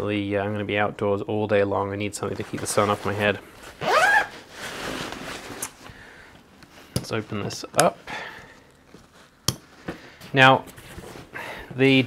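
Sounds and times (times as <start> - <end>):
faint shuffling: 2.2 - 12.0
fabric bag rustling: 2.3 - 6.8.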